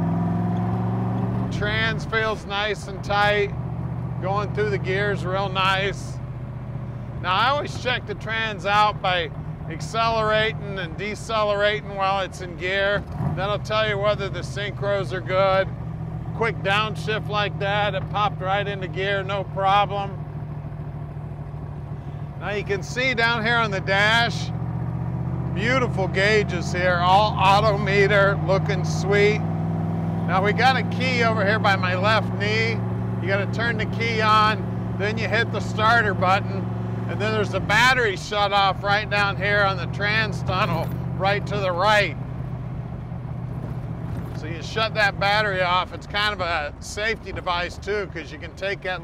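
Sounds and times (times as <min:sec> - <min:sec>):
car engine cruising: 0:00.0 - 0:49.0.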